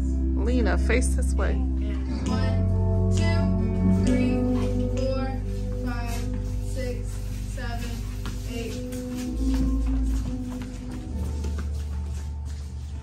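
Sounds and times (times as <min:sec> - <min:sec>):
recorded song with vocals: 0:01.8 - 0:13.0.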